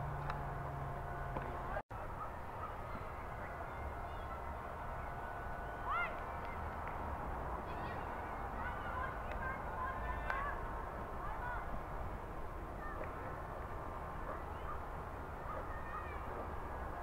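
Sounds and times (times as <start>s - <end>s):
low steady outdoor rumble: 0.0s - 17.0s.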